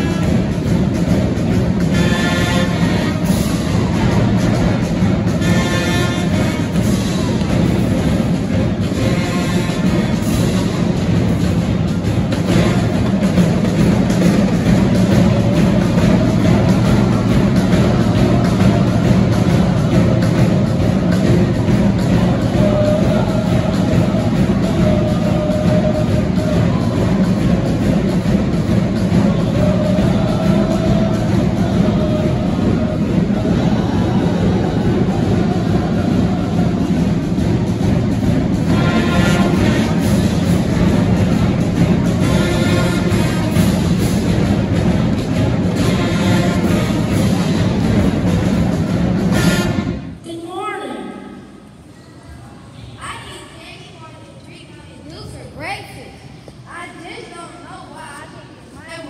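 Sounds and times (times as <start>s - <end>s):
drums and cymbals beat: 0.0s - 50.2s
wind band playing loudly: 0.0s - 50.2s.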